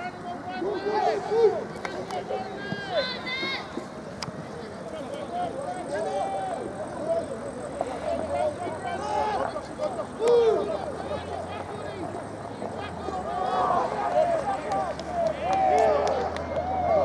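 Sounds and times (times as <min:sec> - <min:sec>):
distant players shouting: 0:00.0 - 0:03.8, 0:05.0 - 0:17.0.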